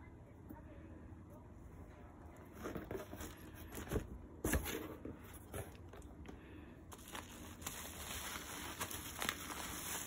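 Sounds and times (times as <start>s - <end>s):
cardboard and bubble wrap rustling: 2.5s - 6.1s, 6.9s - 10.0s.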